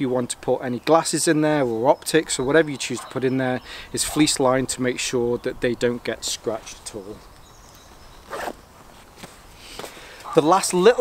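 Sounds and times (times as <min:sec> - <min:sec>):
backpack zipper rasp: 0:08.2 - 0:08.6.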